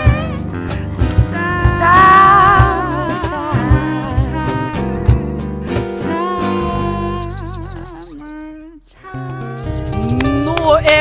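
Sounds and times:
woman singing with vibrato: 0:00.0 - 0:05.1, 0:05.9 - 0:11.0
acoustic band with guitars: 0:00.0 - 0:11.0.

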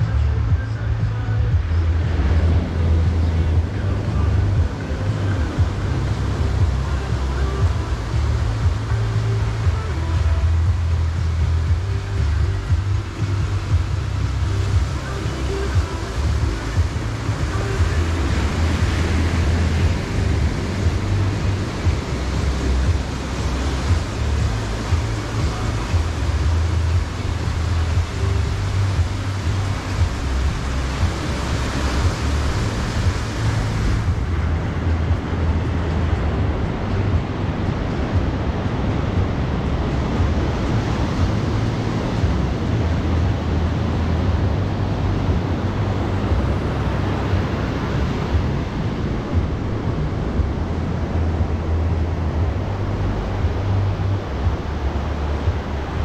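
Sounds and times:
low rumble: 0:00.0 - 0:56.0
waves breaking on shore: 0:00.0 - 0:56.0.

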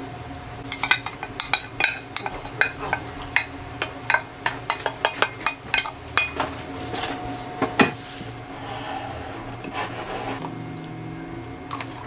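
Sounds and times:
rubbing against bowl: 0:08.0 - 0:10.6.

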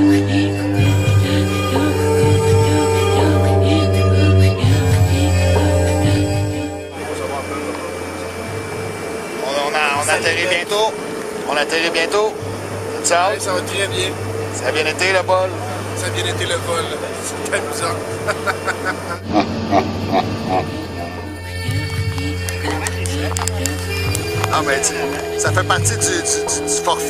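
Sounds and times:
steady hum: 0:00.0 - 0:27.0
airliner cabin engine rush: 0:04.6 - 0:27.0
faint voices: 0:06.9 - 0:19.2, 0:20.4 - 0:27.0
man laughing hard: 0:18.0 - 0:20.8.

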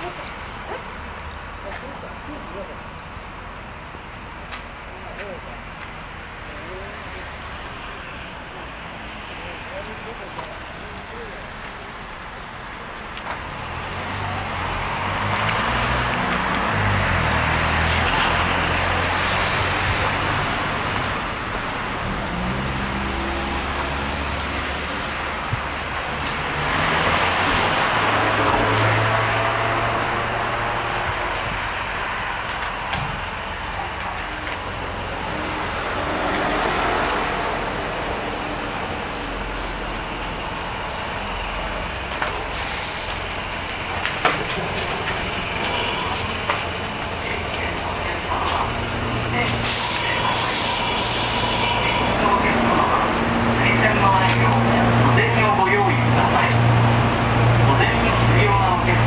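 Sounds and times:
road vehicles passing: 0:00.0 - 0:59.0.

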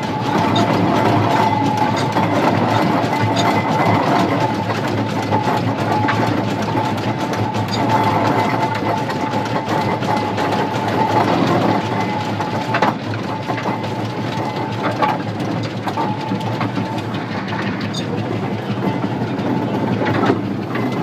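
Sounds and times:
steam engine clattering: 0:00.0 - 0:21.0.

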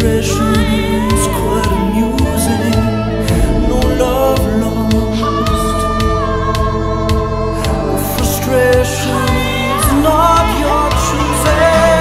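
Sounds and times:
bass: 0:00.0 - 0:12.0
choir-like backing voices: 0:00.0 - 0:12.0
pop-rock song with singing: 0:00.0 - 0:12.0
drum beat: 0:03.3 - 0:05.5.

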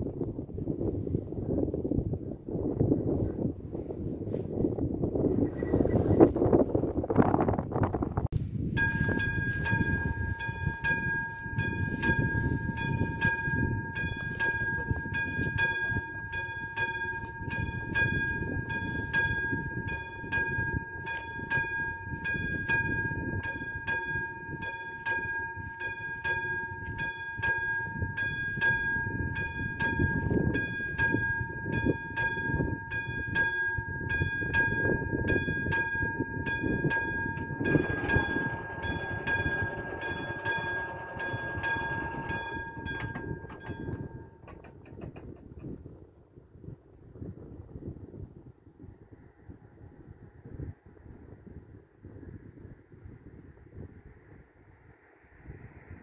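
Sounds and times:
level crossing warning bell: 0:08.7 - 0:45.3
barrier mechanical whirr: 0:36.4 - 0:45.2.

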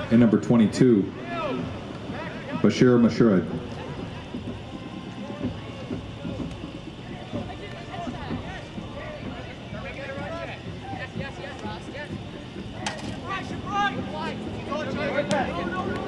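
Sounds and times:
players and spectators shouting: 0:00.0 - 0:16.0.

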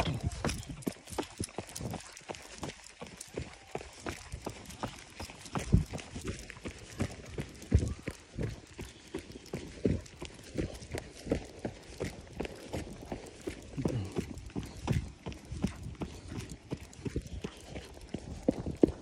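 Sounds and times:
running footsteps on dirt: 0:00.0 - 0:19.0.

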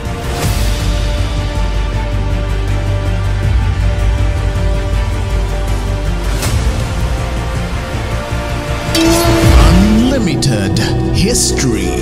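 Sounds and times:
theme music: 0:00.0 - 0:12.0
sharp swishing accents: 0:08.9 - 0:11.0
held tone with pitch sweeps: 0:09.0 - 0:11.4.

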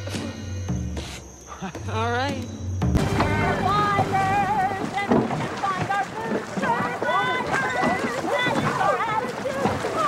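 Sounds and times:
woman singing: 0:03.2 - 0:05.3.

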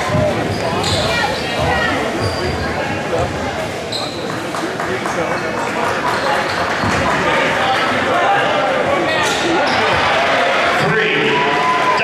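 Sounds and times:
crowd and player voices: 0:00.0 - 0:12.0.

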